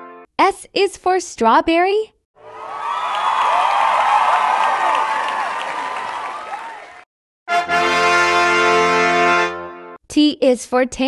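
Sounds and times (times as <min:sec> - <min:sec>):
crowd cheering and clapping: 0:02.4 - 0:07.1.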